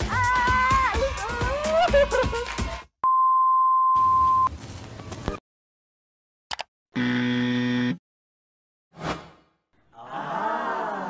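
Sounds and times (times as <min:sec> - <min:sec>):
steady buzzer tone: 0:07.0 - 0:08.0.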